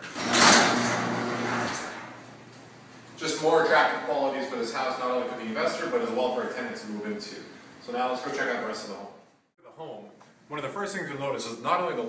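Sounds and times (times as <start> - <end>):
garage door moving: 0.0 - 2.5
garage door opener motor hum: 0.0 - 3.1.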